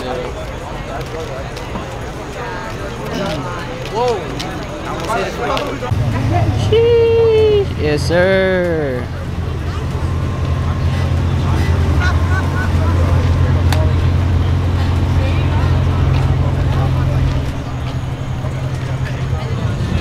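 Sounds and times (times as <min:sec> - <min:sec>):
voices chattering: 0:00.0 - 0:20.0
car engine running: 0:05.9 - 0:20.0.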